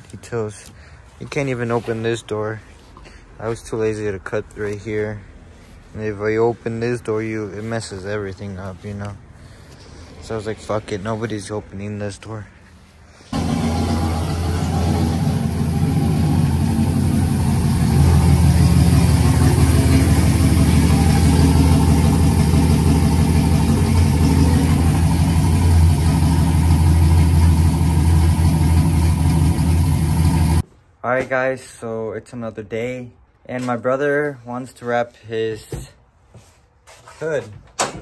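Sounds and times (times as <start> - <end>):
truck engine idling: 12.6 - 30.6.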